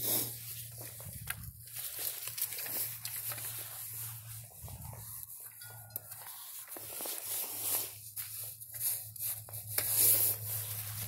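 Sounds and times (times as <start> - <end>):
footsteps crunching dry leaves: 0.4 - 11.0.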